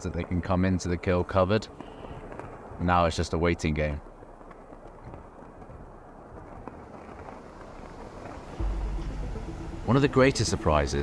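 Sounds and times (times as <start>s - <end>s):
wind hiss: 1.5s - 11.0s.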